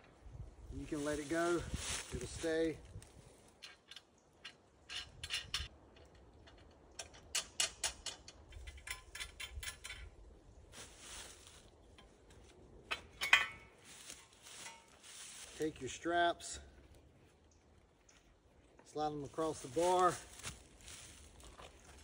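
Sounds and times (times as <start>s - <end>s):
metal parts clinking and rattling: 3.6s - 10.1s, 12.9s - 13.8s.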